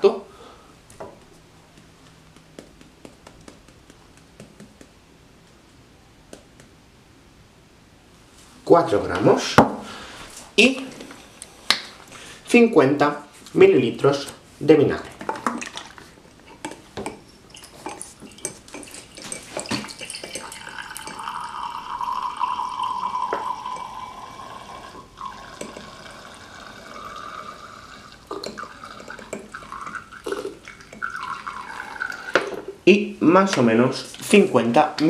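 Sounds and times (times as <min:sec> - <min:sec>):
liquid pouring into glass beaker: 0:17.0 - 0:32.6.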